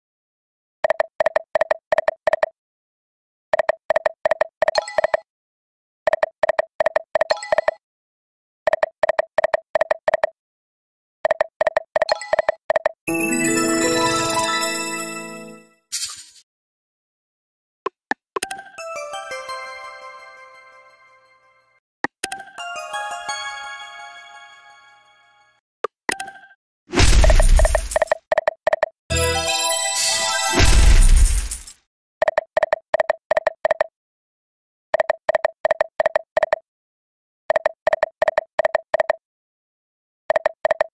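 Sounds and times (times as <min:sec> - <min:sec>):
slot game jingle: 0:13.1 - 0:15.8, 0:18.8 - 0:21.7, 0:22.5 - 0:25.6, 0:29.1 - 0:31.2.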